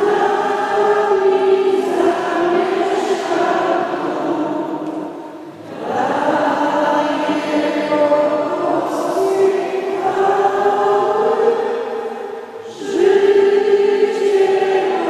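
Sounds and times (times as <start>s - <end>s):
choir singing a slow hymn: 0.0s - 15.0s.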